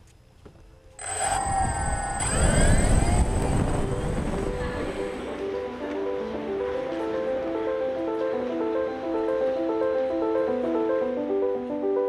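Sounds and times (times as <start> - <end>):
low rumble: 1.0 - 5.4
drone motors whining: 1.0 - 5.5.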